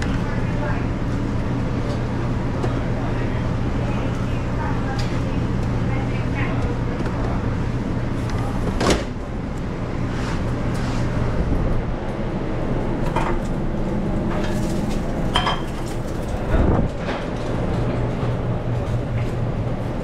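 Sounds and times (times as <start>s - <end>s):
faint voices: 0.0s - 8.8s
kitchen equipment humming: 0.0s - 20.0s.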